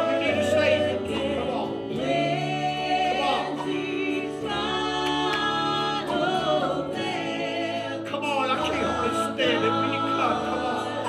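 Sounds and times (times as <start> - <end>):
choir singing gospel song: 0.0 - 11.0
keyboard: 0.0 - 11.0.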